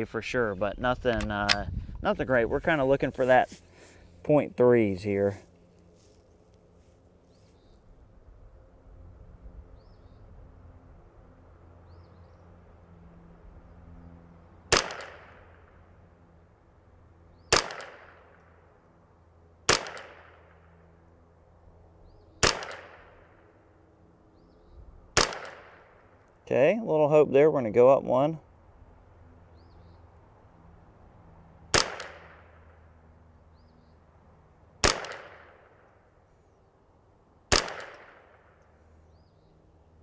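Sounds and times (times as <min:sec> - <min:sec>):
rifle shots: 0:14.7 - 0:15.6, 0:17.5 - 0:18.4, 0:19.7 - 0:20.6, 0:22.4 - 0:23.3, 0:25.2 - 0:26.0, 0:31.7 - 0:32.6, 0:34.8 - 0:35.9, 0:37.5 - 0:38.6.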